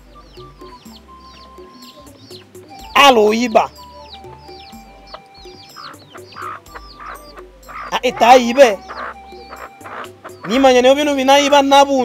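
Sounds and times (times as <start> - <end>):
chickens clucking: 0.0 - 12.0
soft background music: 0.0 - 12.0.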